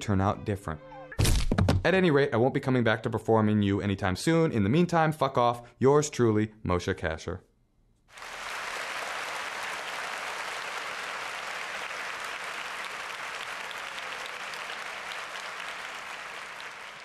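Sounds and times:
audience applauding: 8.1s - 17.0s.

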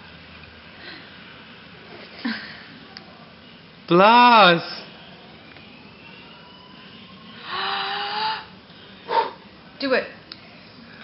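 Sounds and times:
faint hum of voice: 4.9s - 11.0s.

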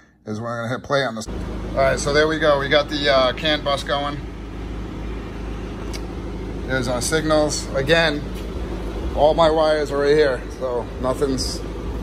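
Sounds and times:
low background rumble: 1.3s - 12.0s.

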